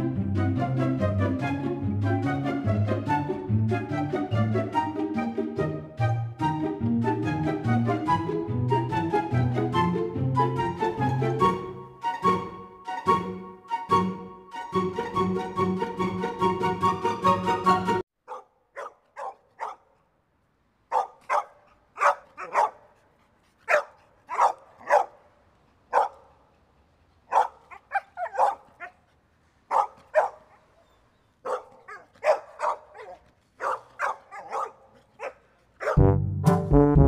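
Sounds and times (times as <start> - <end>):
music: 0.0 - 18.0, 36.0 - 37.0.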